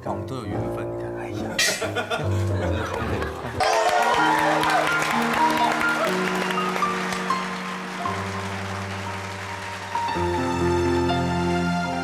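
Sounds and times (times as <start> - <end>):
audience applause: 2.8 - 12.0
electronic keyboard playing chords: 4.0 - 12.0.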